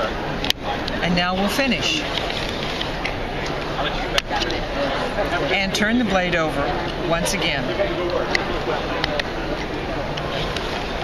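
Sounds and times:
background voices chattering: 0:00.0 - 0:11.0.

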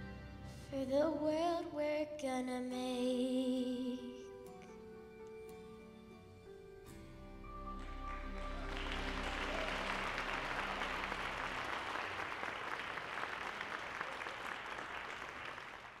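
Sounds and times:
held musical chord: 0:05.7 - 0:12.9
audience applauding: 0:07.7 - 0:16.0.

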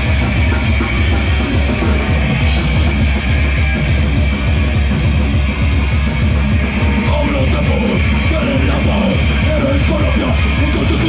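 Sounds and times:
bass guitar: 0:00.0 - 0:11.0
distorted electric guitar: 0:00.0 - 0:11.0
fast dense drumming: 0:00.0 - 0:11.0.

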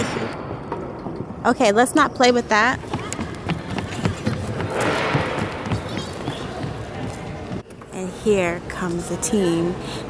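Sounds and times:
hubbub of voices: 0:02.8 - 0:10.0.

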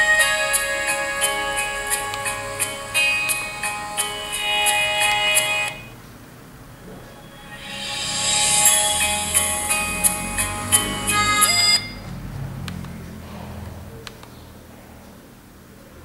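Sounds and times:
song from music player: 0:00.0 - 0:06.0, 0:06.8 - 0:12.1.

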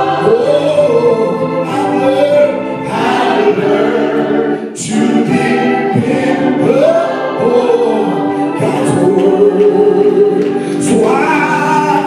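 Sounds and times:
man singing lead: 0:00.0 - 0:04.0, 0:04.8 - 0:12.0
gospel choir singing: 0:00.0 - 0:12.0.

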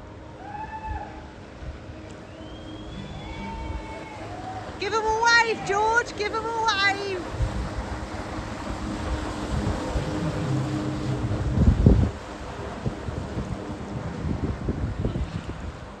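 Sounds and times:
jetboard rushing across water: 0:00.0 - 0:16.0
wind buffeting microphone: 0:00.7 - 0:16.0.

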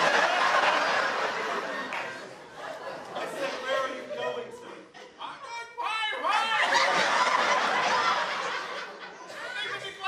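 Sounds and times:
audience laughter: 0:00.0 - 0:05.2, 0:06.6 - 0:10.0.

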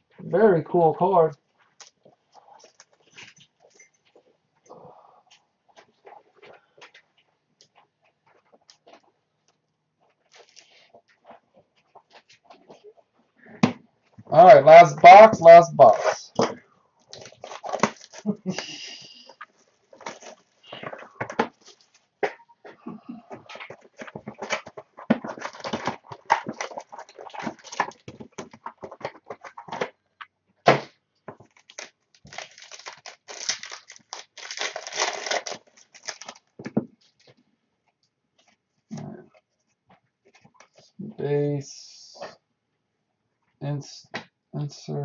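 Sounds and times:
card packs being torn open: 0:15.9 - 0:18.7, 0:19.5 - 0:21.0, 0:23.8 - 0:29.9, 0:31.4 - 0:36.5.

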